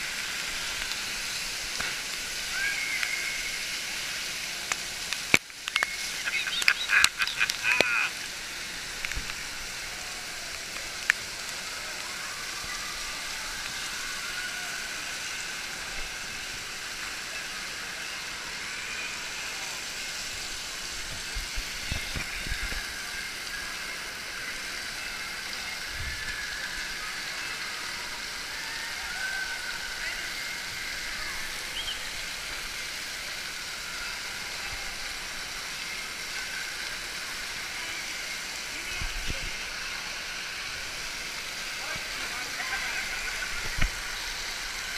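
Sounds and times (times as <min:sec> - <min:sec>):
spraying and splashing water: 0:00.0 - 0:44.9
many voices: 0:06.0 - 0:08.6, 0:37.0 - 0:44.9.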